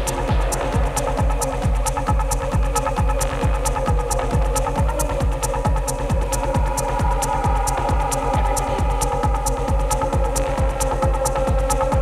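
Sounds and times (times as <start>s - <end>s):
droning synth pad: 0.0s - 12.0s
kick drum: 0.0s - 12.0s
offbeat hi-hats: 0.0s - 12.0s.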